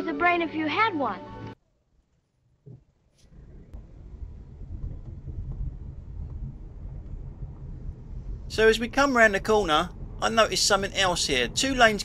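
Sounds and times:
car engine and road noise: 3.2 - 12.0.

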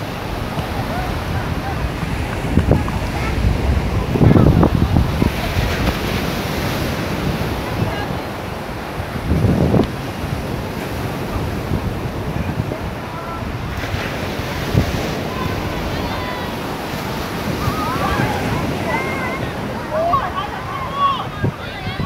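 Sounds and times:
sea surf: 0.0 - 22.0
wind buffeting microphone: 0.0 - 22.0.

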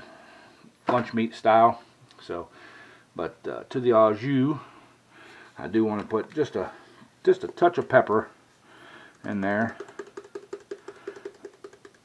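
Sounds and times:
pepper shaker tapping: 9.2 - 12.0.

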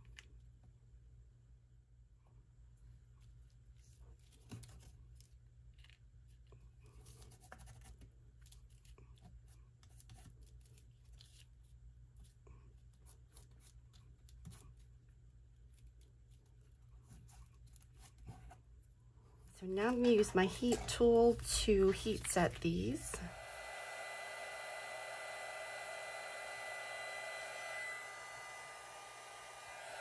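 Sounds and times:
low steady hum: 10.8 - 30.0.

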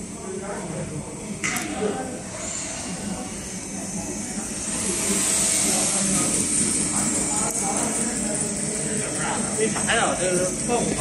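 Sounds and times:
hydraulic motor and pump hum: 0.0 - 11.0.

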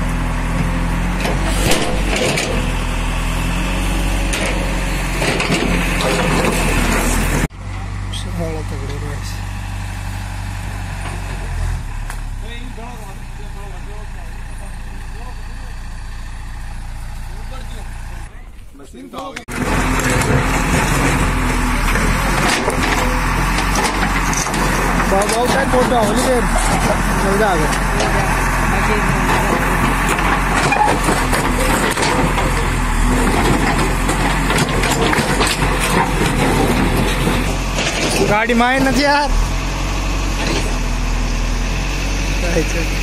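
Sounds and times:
excavator engine running: 0.0 - 43.0.

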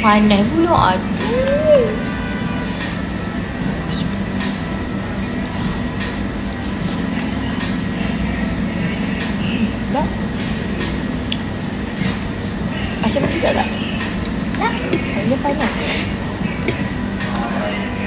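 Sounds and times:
low rumble and hum: 0.0 - 18.0.

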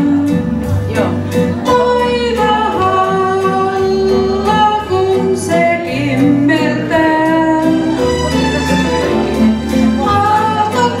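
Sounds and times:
woman singing karaoke: 0.0 - 8.2, 9.9 - 11.0
recorded backing track: 0.0 - 11.0.

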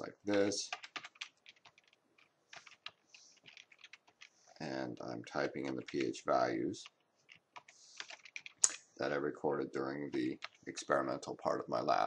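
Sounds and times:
computer keyboard typing: 0.2 - 4.4, 5.4 - 8.8, 10.0 - 10.8.

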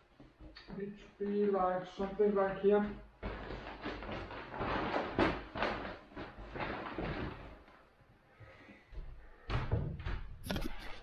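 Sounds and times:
rustling foam mat and plastic bags: 2.0 - 11.0.

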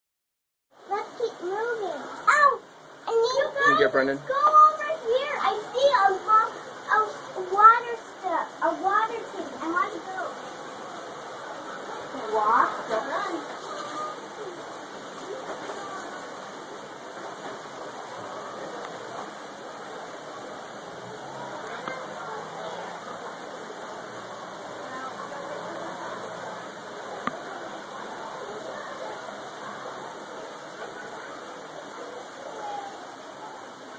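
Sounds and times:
faint voices: 0.8 - 33.9
water running over rocks: 0.8 - 33.9.

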